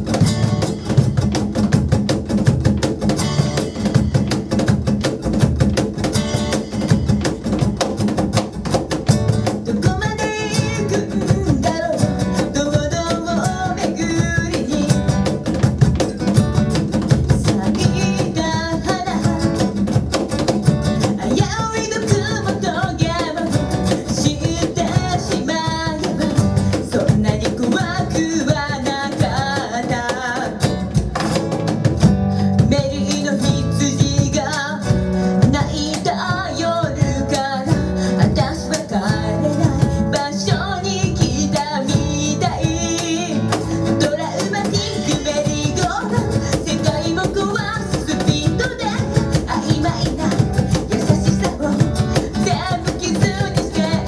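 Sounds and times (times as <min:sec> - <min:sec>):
cajon beat: 0:00.0 - 0:54.0
strummed acoustic guitar: 0:00.0 - 0:54.0
woman singing: 0:09.0 - 0:16.1, 0:16.8 - 0:20.2, 0:20.8 - 0:31.2, 0:32.1 - 0:54.0.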